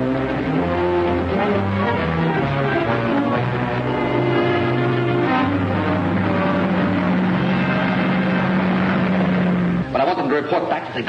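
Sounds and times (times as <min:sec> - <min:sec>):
dramatic orchestral music: 0:00.0 - 0:10.2.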